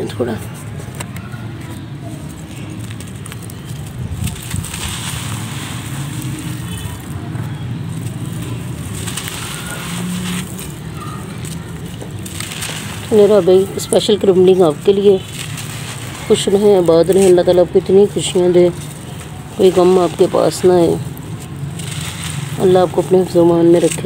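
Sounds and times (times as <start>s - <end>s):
mud balls crunching by hand: 0.0s - 24.0s.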